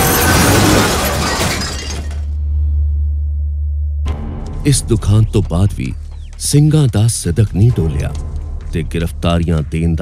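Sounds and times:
crash of metal and breaking glass: 0.0s - 2.4s.

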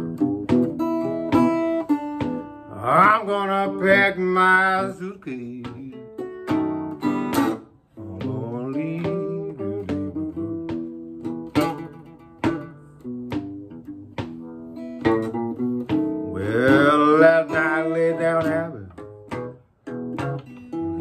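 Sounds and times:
blues acoustic guitar playing: 0.0s - 21.0s
foot stomping on wooden board: 0.1s - 3.3s, 5.6s - 19.6s.

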